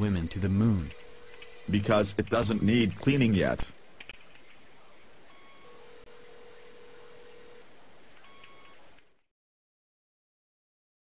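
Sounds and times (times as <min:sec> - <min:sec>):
faint electronic beeps: 0:00.0 - 0:03.7, 0:04.4 - 0:09.0
steady background hiss: 0:00.0 - 0:09.3.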